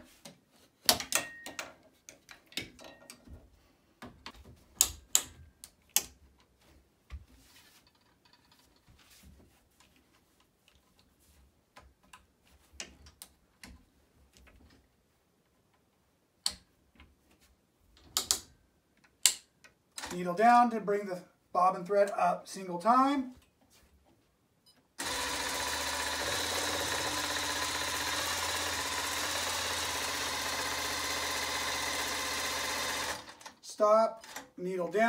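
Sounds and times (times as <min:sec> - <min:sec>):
quilting frame clicks and clunks: 0:00.1 - 0:20.2.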